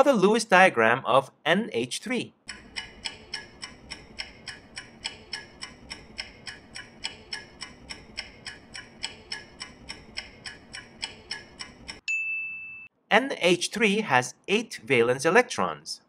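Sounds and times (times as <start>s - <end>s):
rapid clock ticking: 2.4s - 12.0s.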